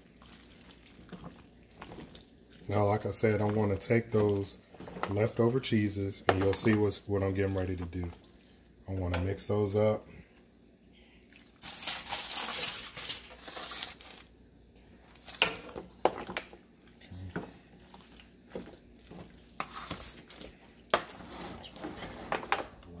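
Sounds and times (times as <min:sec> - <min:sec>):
sauced pasta squishing: 0:00.0 - 0:09.4, 0:11.2 - 0:23.0
foil pan crinkling: 0:11.6 - 0:14.4.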